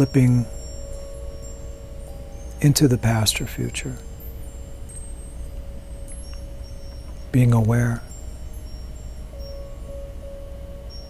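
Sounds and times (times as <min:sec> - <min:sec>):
ambient meditation music: 0:00.0 - 0:11.0
low hum: 0:00.0 - 0:11.0.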